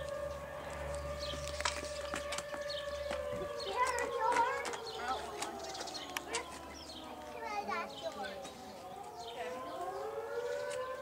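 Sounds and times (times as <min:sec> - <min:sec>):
rising siren-like wail: 0:00.0 - 0:11.0.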